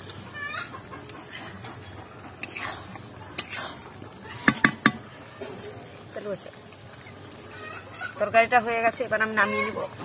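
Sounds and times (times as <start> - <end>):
metal spatula scraping pan: 1.8 - 3.8
spatula knocking against pan: 4.4 - 5.1.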